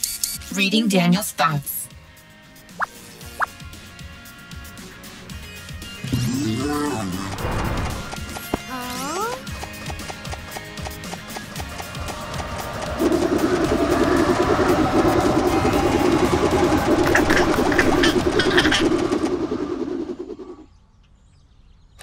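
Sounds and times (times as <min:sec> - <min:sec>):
cartoon background music: 0:00.4 - 0:13.1
rushing sound effect: 0:06.0 - 0:08.4, 0:11.3 - 0:20.7
rising whistle sound effect: 0:11.8 - 0:20.7.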